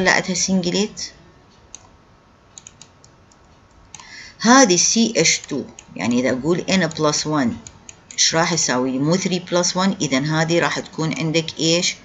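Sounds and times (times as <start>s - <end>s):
computer mouse clicks: 1.7s - 4.1s, 5.4s - 6.0s, 6.8s - 8.2s.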